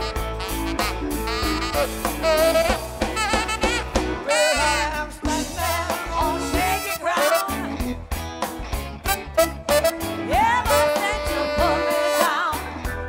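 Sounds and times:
live blues band playing: 0:00.0 - 0:13.0
voices singing: 0:04.3 - 0:07.8, 0:10.3 - 0:12.6.

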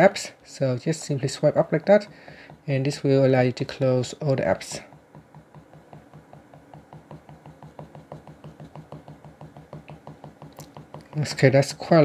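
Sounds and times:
fingertips tapping on touchscreen: 0:00.8 - 0:11.6.

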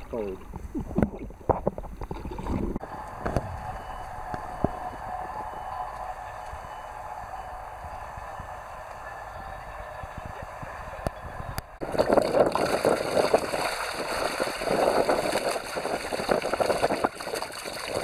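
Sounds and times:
faint hum: 0:02.2 - 0:16.0
steady low rumble: 0:02.4 - 0:17.9
water rushing and splashing: 0:11.8 - 0:18.0.

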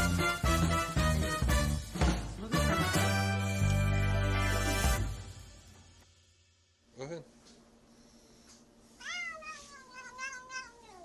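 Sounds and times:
cat meowing: 0:09.0 - 0:11.0.

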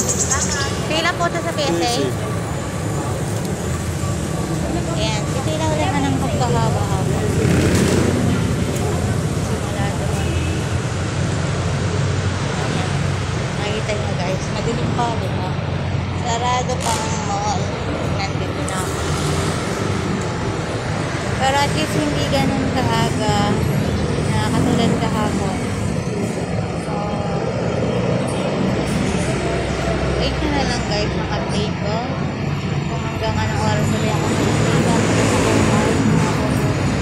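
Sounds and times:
road traffic rumble: 0:00.0 - 0:37.0
person talking: 0:00.4 - 0:02.3.

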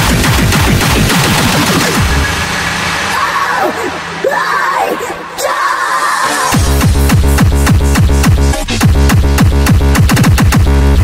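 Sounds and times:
distorted kick drum roll: 0:06.6 - 0:11.0.

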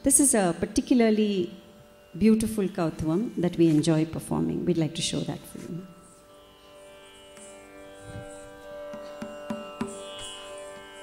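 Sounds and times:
ringing drum strokes: 0:07.3 - 0:11.0.

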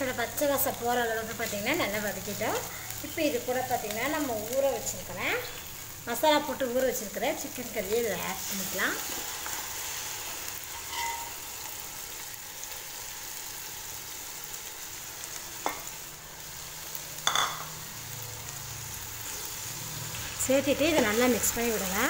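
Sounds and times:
oil sizzling in a pot: 0:00.0 - 0:22.0
utensils clinking against pot: 0:10.8 - 0:11.3.

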